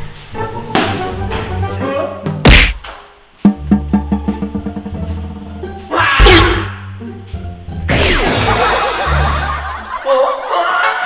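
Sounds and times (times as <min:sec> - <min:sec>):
background music: 0:00.0 - 0:11.0
punchy thuds: 0:02.4 - 0:03.0
loud sharp impact: 0:02.5 - 0:03.0.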